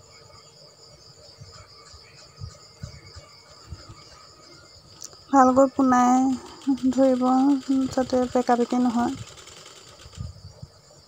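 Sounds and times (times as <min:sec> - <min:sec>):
woman speaking: 0:05.3 - 0:09.2
sewing machine knocking: 0:05.9 - 0:10.3.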